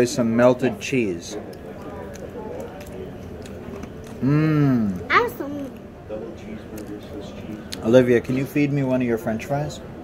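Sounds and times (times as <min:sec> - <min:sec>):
restaurant room noise: 0:00.0 - 0:10.0.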